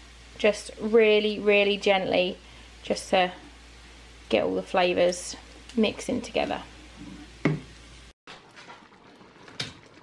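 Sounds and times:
stock simmering: 0.0 - 10.0
wooden spoon stirring in a pan: 6.9 - 10.0.

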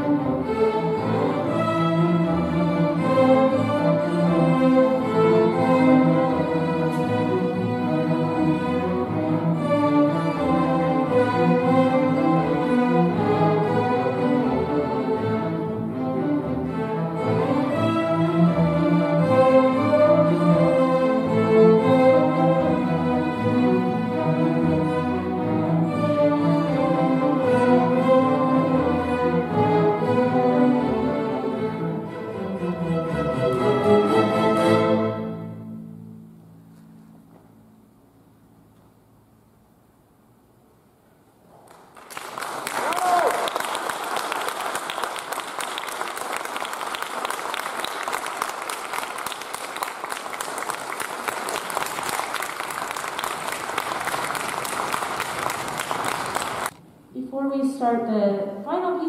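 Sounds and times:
string orchestra playing: 0.0 - 37.0, 43.8 - 56.8.

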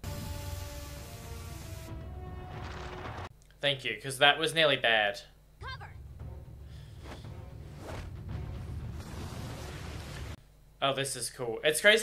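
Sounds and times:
churning sea water rumble: 6.7 - 10.4.

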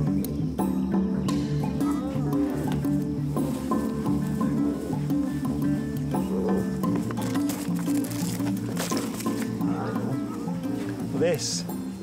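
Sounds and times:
background music: 0.0 - 12.0
lion cub calling: 4.2 - 7.4, 9.0 - 11.1.

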